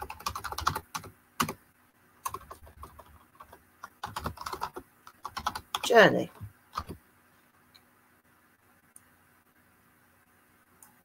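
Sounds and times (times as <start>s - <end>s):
typing on computer keyboard: 0.0s - 1.6s, 2.2s - 5.9s, 6.7s - 7.0s.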